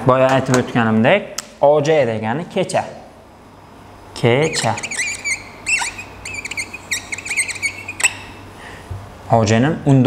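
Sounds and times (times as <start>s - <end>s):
whiteboard marker squeaking: 4.4s - 8.4s.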